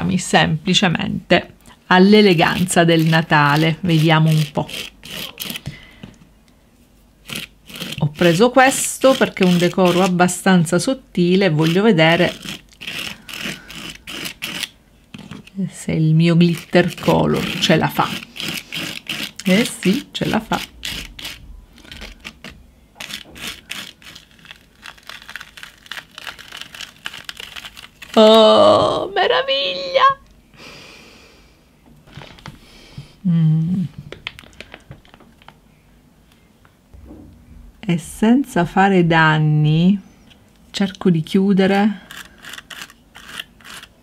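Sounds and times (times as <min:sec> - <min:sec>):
applicator tapping and scraping: 0:07.3 - 0:10.2, 0:11.5 - 0:15.5, 0:16.4 - 0:24.3
plastic stencil peeled off card: 0:20.9 - 0:28.2.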